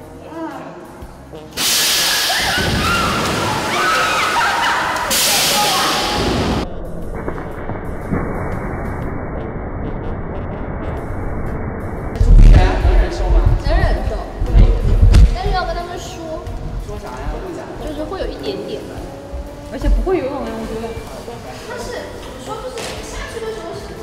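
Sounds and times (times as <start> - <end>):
voices shouting: 2.2 - 6.3
thumps on microphone: 12.2 - 15.6.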